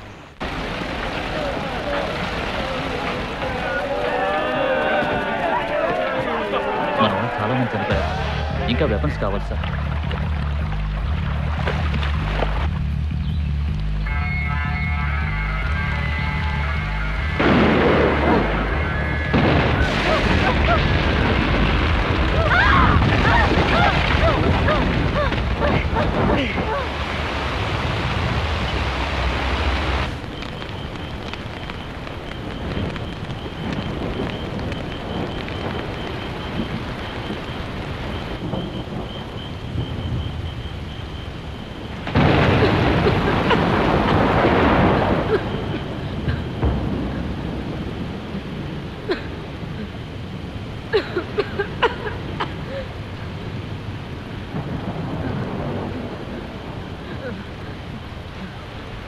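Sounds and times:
rain hiss: 0.0s - 59.0s
thunder rumble: 0.0s - 59.0s.

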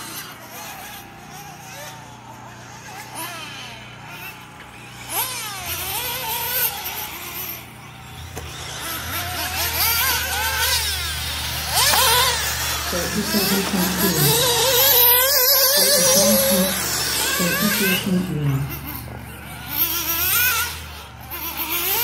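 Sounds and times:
rc car engines revving: 0.0s - 22.0s.

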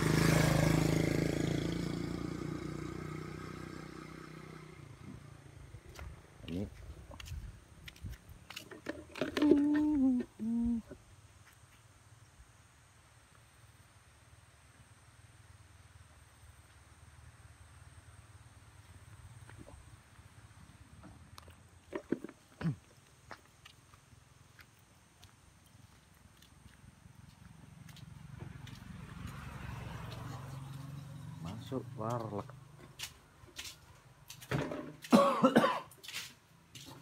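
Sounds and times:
person humming: 9.2s - 11.0s.

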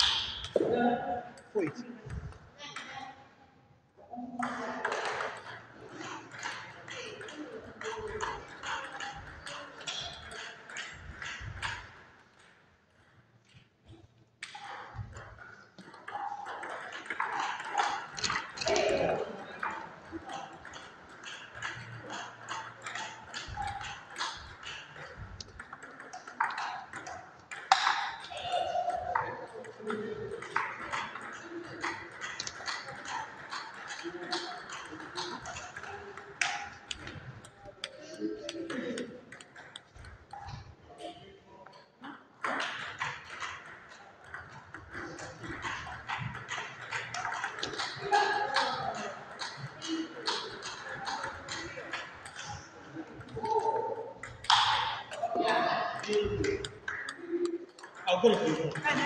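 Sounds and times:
murmur of voices: 4.0s - 12.1s, 14.4s - 59.0s
table tennis ball clicking: 4.8s - 12.6s, 14.4s - 40.7s, 42.4s - 58.9s.

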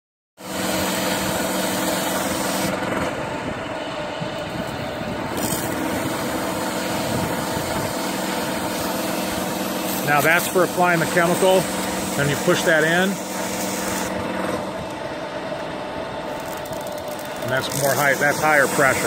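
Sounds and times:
pressure washer hum: 0.4s - 19.0s
water spray hissing on concrete: 5.4s - 14.1s, 17.5s - 19.0s.

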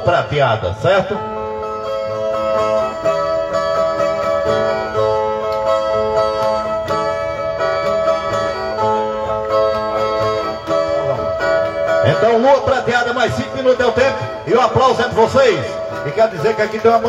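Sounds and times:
guitars plucked and strummed: 0.0s - 17.0s.

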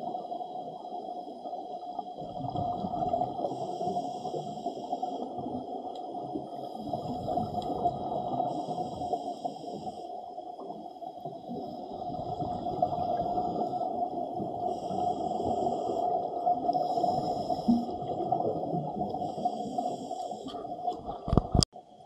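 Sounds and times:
muffled underwater rush: 0.0s - 21.7s.

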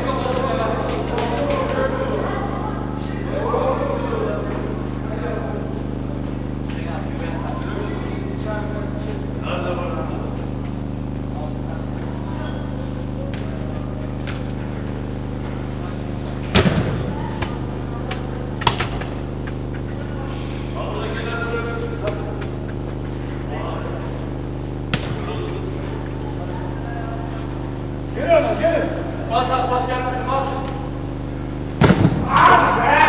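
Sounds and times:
steady electrical hum: 0.0s - 33.0s
football impact with echo: 16.4s - 17.8s, 24.9s - 25.7s, 31.8s - 32.8s
distant shouts of players: 32.2s - 33.0s.

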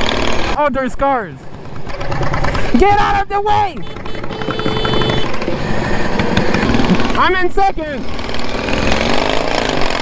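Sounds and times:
lawn mower engine running: 1.4s - 7.3s.

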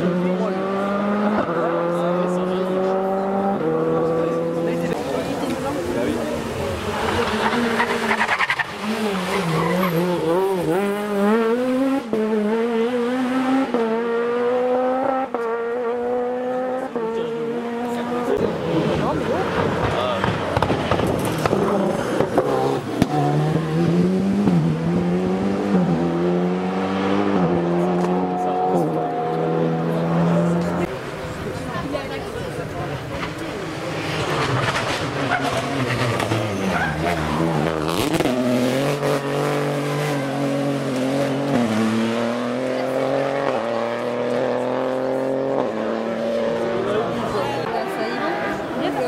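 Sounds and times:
rally cars accelerating: 0.0s - 49.0s.

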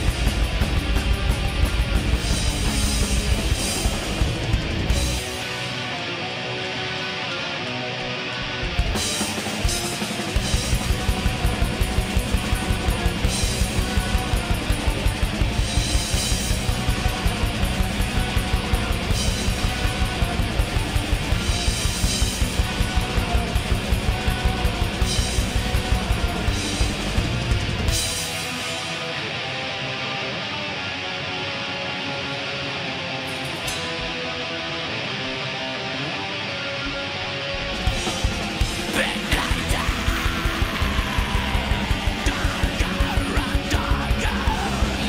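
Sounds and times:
drum kit: 0.0s - 29.4s, 37.4s - 45.0s
distorted electric guitars: 0.0s - 45.0s.

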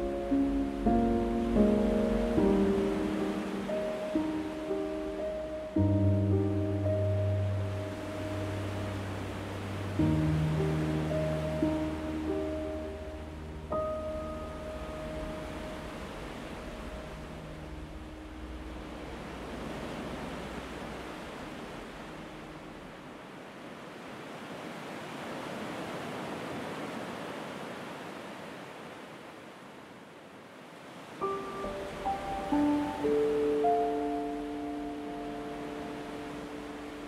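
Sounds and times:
gentle piano piece: 0.0s - 23.1s, 31.0s - 37.0s
ocean waves washing ashore: 0.0s - 37.0s.

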